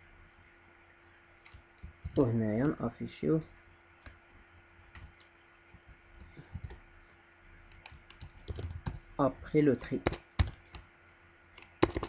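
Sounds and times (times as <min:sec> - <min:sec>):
keyboard typing: 0:01.4 - 0:02.3, 0:04.9 - 0:06.8, 0:07.7 - 0:09.1, 0:09.7 - 0:10.9, 0:11.5 - 0:12.0.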